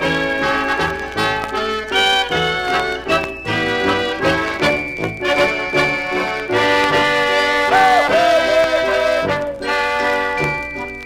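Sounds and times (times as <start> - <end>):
polka dance band music: 0.0 - 11.0.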